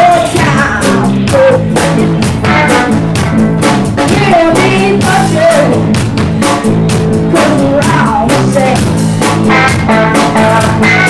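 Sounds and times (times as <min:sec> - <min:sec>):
child singing: 0:00.0 - 0:03.0, 0:04.1 - 0:05.9, 0:07.3 - 0:08.9, 0:09.5 - 0:11.0
drum kit beat: 0:00.0 - 0:11.0
electric guitars: 0:00.0 - 0:11.0.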